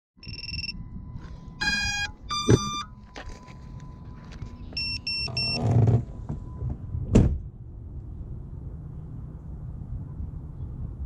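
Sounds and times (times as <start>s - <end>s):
short electronic beeps: 0.2s - 0.9s, 1.6s - 3.4s, 4.6s - 5.6s
buzzy electronic tones: 1.6s - 2.9s.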